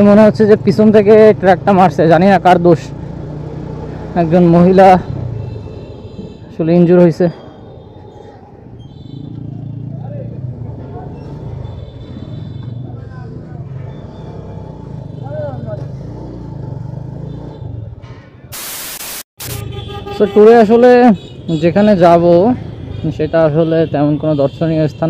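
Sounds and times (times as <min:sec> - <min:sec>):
road noise: 0:00.0 - 0:25.0
loud hiss: 0:18.5 - 0:19.6.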